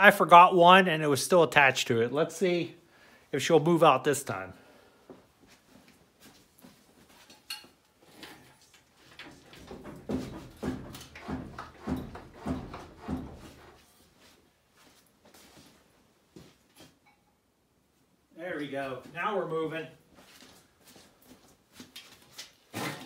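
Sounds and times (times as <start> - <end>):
engine block knocking and scraping: 9.6 - 13.8
rhythmic knocks: 10.0 - 13.8.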